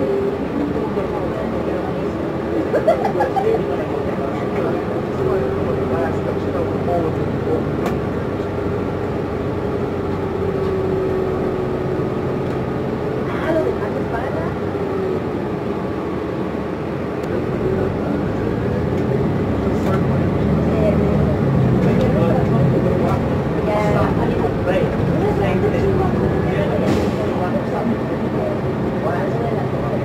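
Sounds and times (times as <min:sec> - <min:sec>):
bus engine hum with whine: 0:00.0 - 0:30.0.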